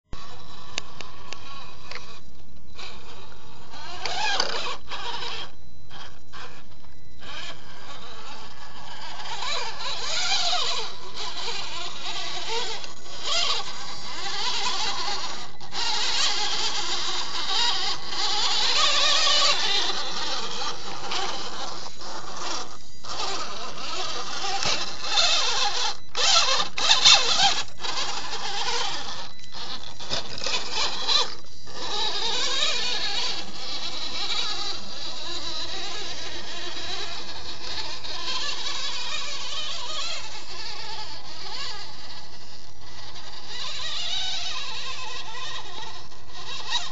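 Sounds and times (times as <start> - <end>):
electric motor and gears whining: 0.1 - 46.9.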